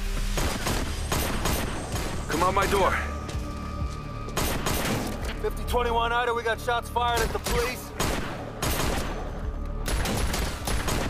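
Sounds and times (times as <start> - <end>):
tense music score: 0.0 - 11.0
pistol shots: 0.4 - 2.3, 4.4 - 5.2, 7.2 - 11.0.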